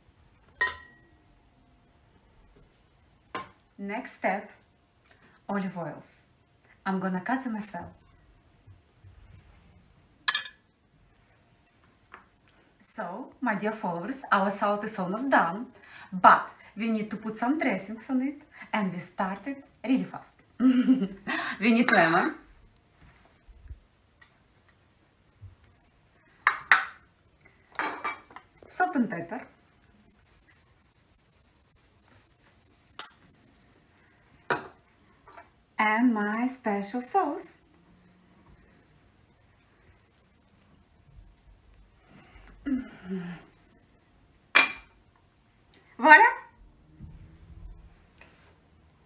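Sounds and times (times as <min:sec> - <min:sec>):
glass clinking on stone countertop: 0:00.6 - 0:01.1, 0:10.2 - 0:10.6, 0:21.8 - 0:22.4, 0:27.7 - 0:28.5, 0:44.5 - 0:45.0.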